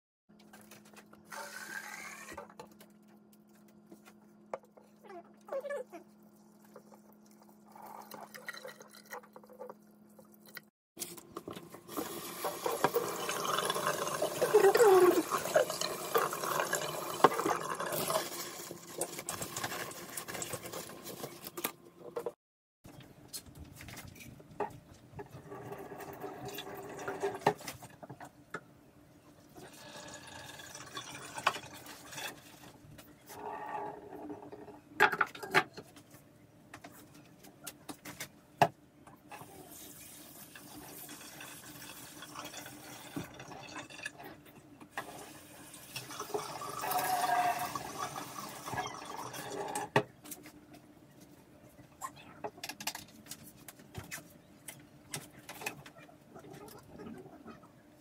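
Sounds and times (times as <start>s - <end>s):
water pouring into metal sink: 11.9s - 21.2s, 45.0s - 49.9s.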